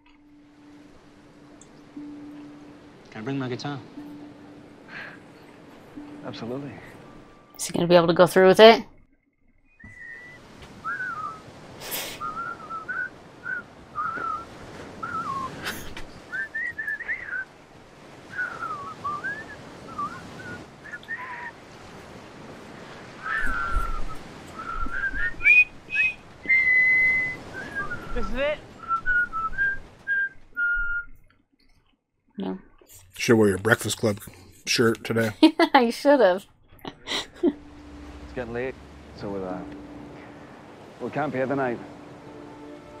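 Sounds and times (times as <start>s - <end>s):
person whistling a tune: 9.8s - 14.4s, 15.0s - 17.4s, 18.3s - 21.5s, 23.2s - 31.2s
faint hiss: 10.5s - 17.5s.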